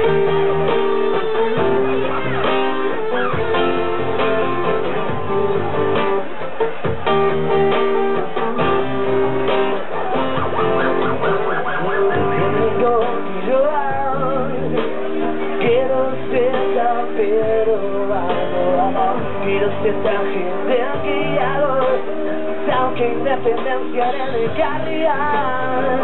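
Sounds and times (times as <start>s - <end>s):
acoustic guitar strumming: 0.0s - 26.0s
held keyboard notes: 0.0s - 26.0s
man singing: 11.7s - 26.0s.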